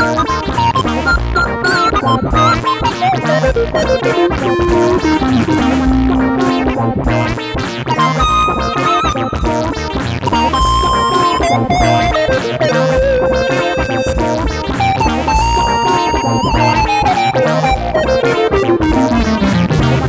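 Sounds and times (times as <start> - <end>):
looped backing beat and bass: 0.0 - 20.0
synth lead held notes: 0.0 - 20.0.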